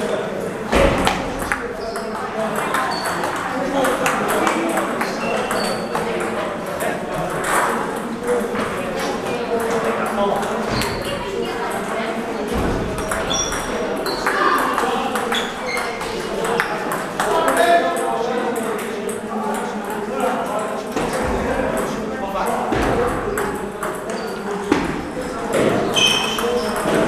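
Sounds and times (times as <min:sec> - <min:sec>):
table tennis balls clicking: 0:01.0 - 0:08.1, 0:13.0 - 0:19.9, 0:25.6 - 0:27.0.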